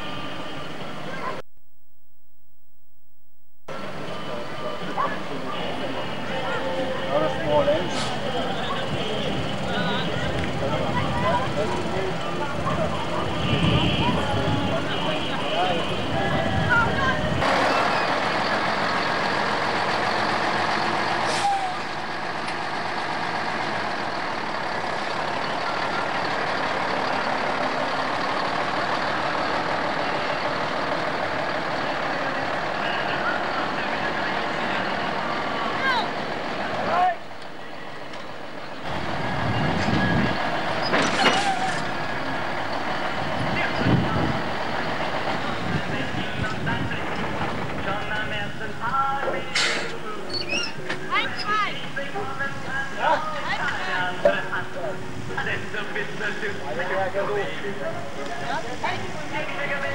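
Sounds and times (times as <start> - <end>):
truck diesel engine running: 3.7 - 50.3.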